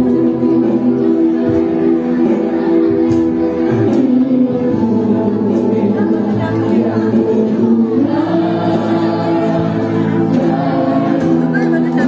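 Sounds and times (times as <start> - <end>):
choral singing in long notes: 0.0 - 12.0.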